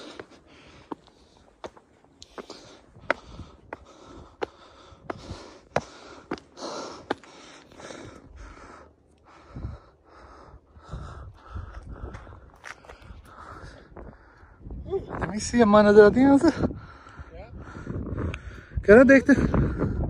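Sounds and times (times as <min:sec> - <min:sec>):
shoes clicking on stone: 0:00.0 - 0:07.8
hard breathing: 0:00.0 - 0:14.8, 0:16.5 - 0:20.0
wind rumble on microphone: 0:09.3 - 0:20.0
footsteps on gravelly trail: 0:11.3 - 0:14.1.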